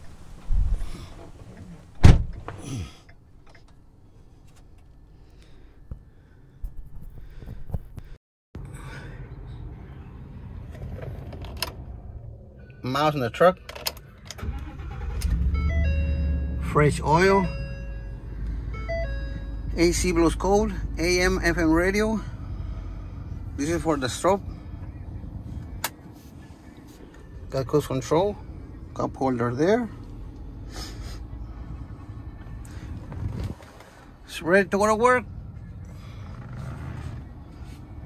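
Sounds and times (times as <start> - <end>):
engine starting and idling: 13.7 - 19.1, 35.0 - 37.8
truck engine idling: 14.4 - 38.0.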